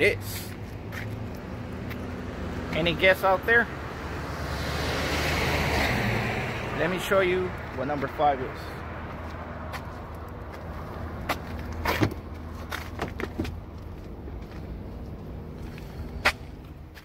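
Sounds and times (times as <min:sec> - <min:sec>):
knocks and handling noises: 0:11.3 - 0:14.6.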